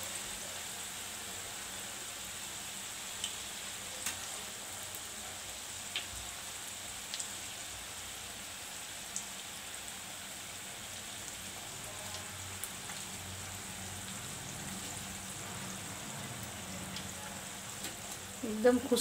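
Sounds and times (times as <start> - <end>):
deep-frying sizzle: 0.0 - 19.0.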